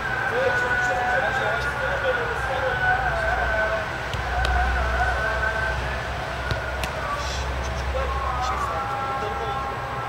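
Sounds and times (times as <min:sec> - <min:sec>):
low city rumble: 0:00.0 - 0:10.0
football smacks: 0:06.4 - 0:07.0.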